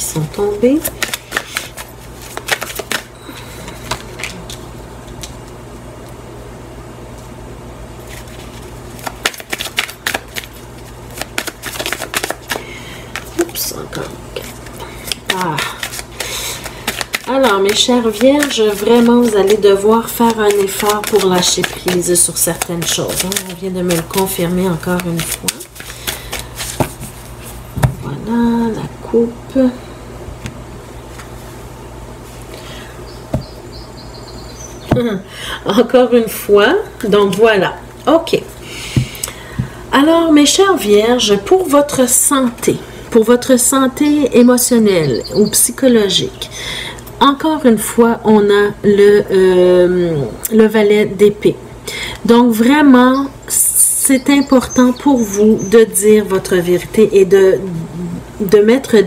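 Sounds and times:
steady low hum: 0.0 - 59.0
cards being shuffled: 0.5 - 3.1, 3.7 - 5.6, 8.0 - 13.5, 14.4 - 27.6
cards clicking: 0.9 - 3.1, 9.0 - 10.5, 11.1 - 13.3, 20.2 - 24.3
woman humming hmm: 57.7 - 58.3.

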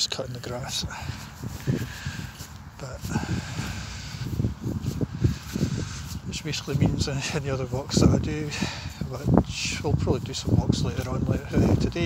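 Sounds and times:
low rumbling on phone microphone: 0.8 - 12.0.

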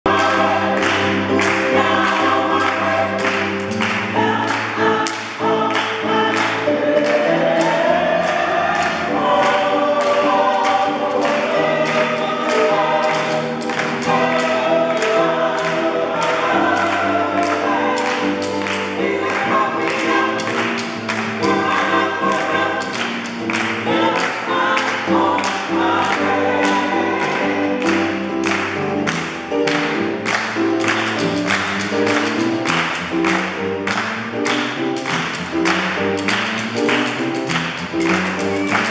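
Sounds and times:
gospel choir singing: 0.0 - 34.8
hand claps: 0.0 - 38.9.

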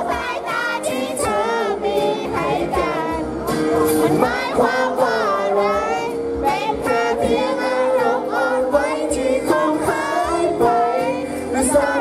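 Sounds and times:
man singing into microphone: 0.0 - 12.0
pop backing music: 0.0 - 12.0.

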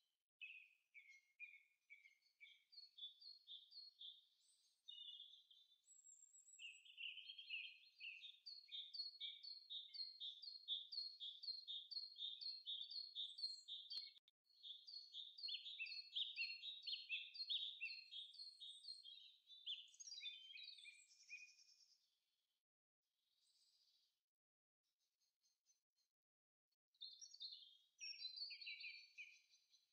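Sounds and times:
bird chirping: 0.4 - 22.0, 27.0 - 29.9
click: 13.9 - 14.2.

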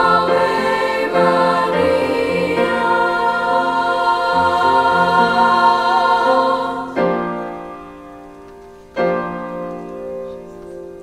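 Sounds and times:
women's chorus singing: 0.0 - 7.5
piano chord: 0.0 - 11.0.

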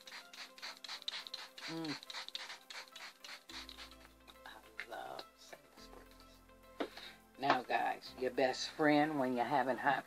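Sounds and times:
spray bottle hissing sprays: 0.0 - 4.1.

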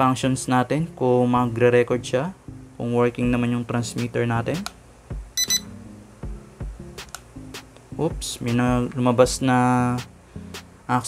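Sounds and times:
soft background music: 0.0 - 11.0
high electronic beeps: 5.4 - 5.7.

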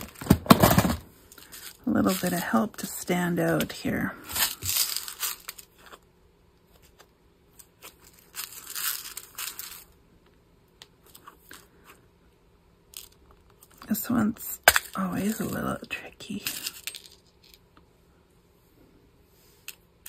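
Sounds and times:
plastic bag crinkling: 0.0 - 3.0, 3.6 - 6.0, 7.6 - 9.9.

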